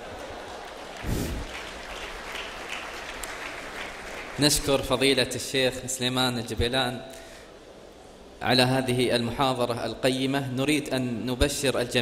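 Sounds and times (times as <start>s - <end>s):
audience applauding: 0.0s - 4.9s.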